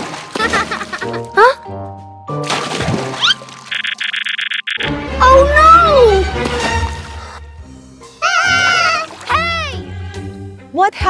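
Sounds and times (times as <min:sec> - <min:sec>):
background music: 0:00.0 - 0:03.8, 0:04.8 - 0:11.0.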